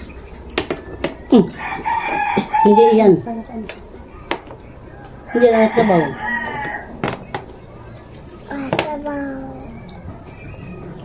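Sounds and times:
rooster crowing: 1.4 - 3.1, 4.9 - 7.3.

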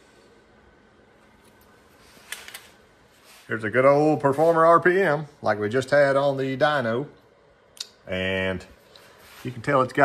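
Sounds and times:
soft clicks and rustles: 1.2 - 3.5.

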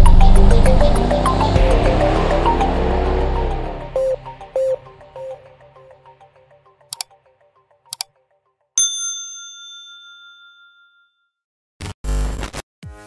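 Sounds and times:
background music: 0.0 - 8.4
bright bell ding: 8.8 - 11.1.

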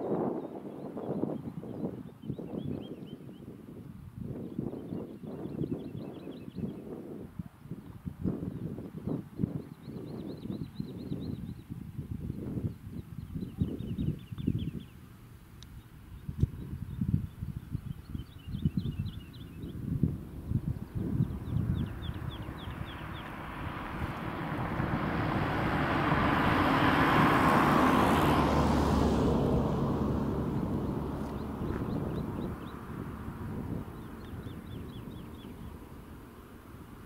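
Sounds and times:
wind buffeting microphone: 0.0 - 37.0
road vehicle passing by: 19.1 - 37.0.

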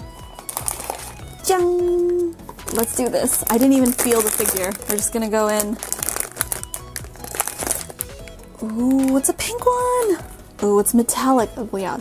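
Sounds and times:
background music: 0.0 - 12.0
foil wrapper crinkling: 0.3 - 1.4, 2.6 - 10.2.

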